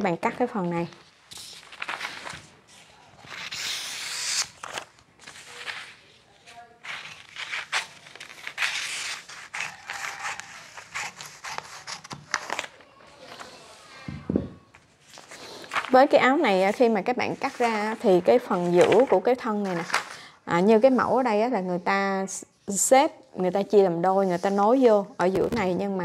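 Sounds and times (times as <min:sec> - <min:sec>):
stiff paper rustling: 0:01.0 - 0:14.1, 0:14.7 - 0:20.2
scissors snipping paper: 0:06.8 - 0:12.8.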